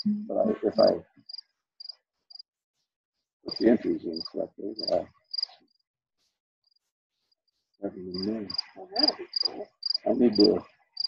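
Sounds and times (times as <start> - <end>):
cricket chirping: 0.0 - 2.4, 3.5 - 5.6, 7.8 - 11.0.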